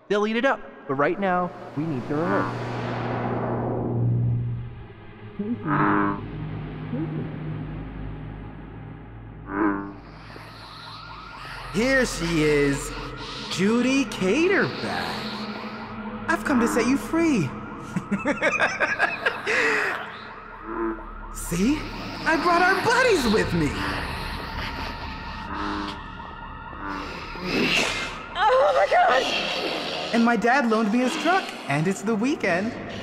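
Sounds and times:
synthesizer music: 1.3 - 29.2
loud pitched tone: 1.4 - 24.4
warbling chirps: 1.4 - 30.2
siren yelping: 9.7 - 31.6.

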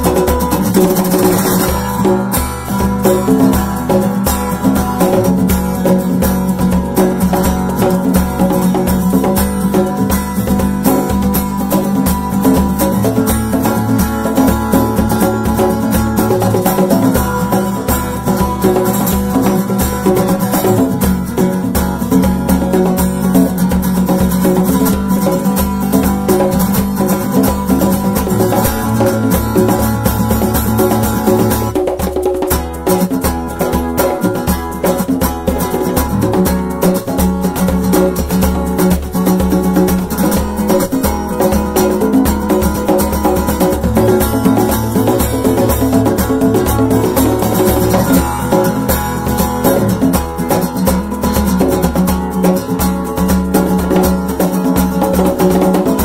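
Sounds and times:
congas and hand percussion: 0.0 - 56.0
strummed acoustic guitar: 0.0 - 56.0.

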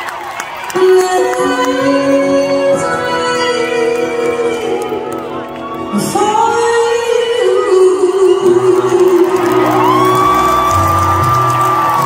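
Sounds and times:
singer's lead vocal: 0.7 - 10.5
live band playing: 0.8 - 12.0.

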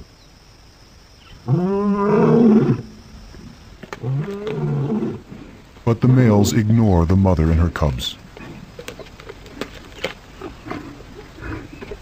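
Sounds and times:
lion calling: 4.0 - 6.7.

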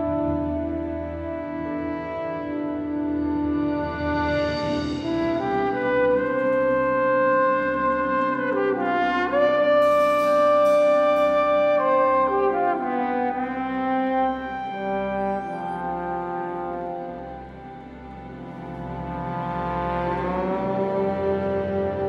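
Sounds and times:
solo trombone: 0.0 - 17.6, 18.6 - 22.0
orchestra playing softly: 0.0 - 22.0.

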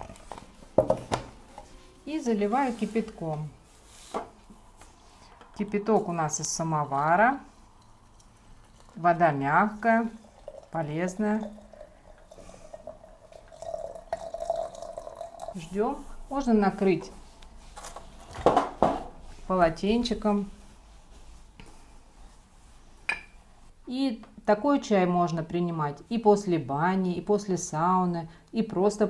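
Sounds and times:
water trickling into teapot: 7.7 - 15.7.

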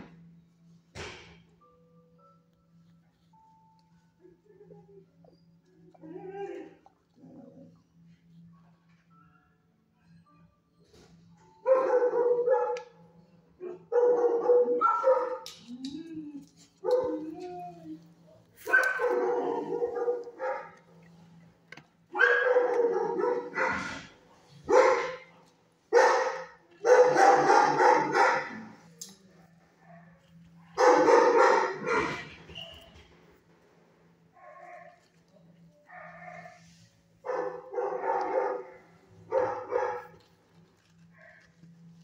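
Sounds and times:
dog barking: 11.7 - 13.0, 13.6 - 15.5, 18.6 - 20.8, 22.1 - 24.1, 24.7 - 28.8, 30.8 - 32.3, 35.9 - 40.2.

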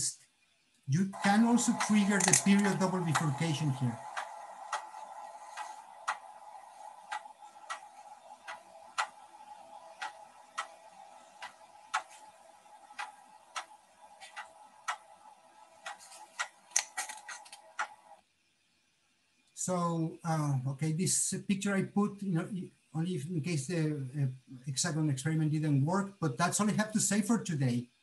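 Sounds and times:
steady hum: 0.9 - 18.2
sharp mechanical clicks: 1.2 - 9.2, 15.8 - 18.0.

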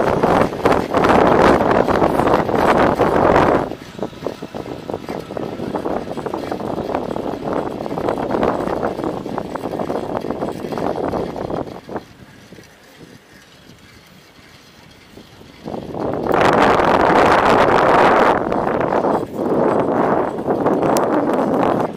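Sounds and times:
wind buffeting microphone: 0.0 - 21.9.

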